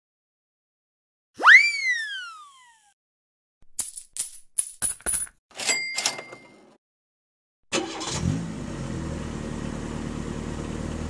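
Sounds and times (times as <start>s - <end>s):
cartoon pitched swoop: 1.4s - 3.0s.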